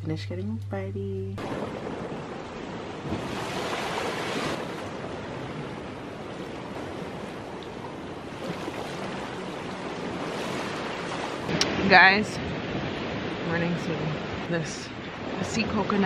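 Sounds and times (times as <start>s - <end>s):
small waves breaking on beach: 1.4s - 16.0s.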